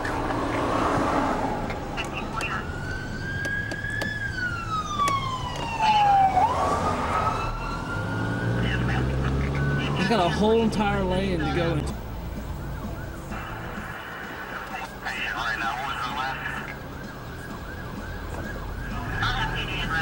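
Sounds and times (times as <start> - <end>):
car engine hum: 0.0 - 20.0
emergency siren wailing: 0.0 - 20.0
road noise: 0.0 - 20.0.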